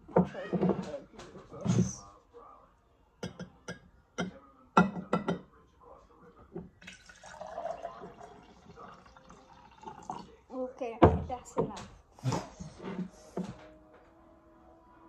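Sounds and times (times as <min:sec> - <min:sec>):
liquid pouring into glass: 0:06.8 - 0:10.4.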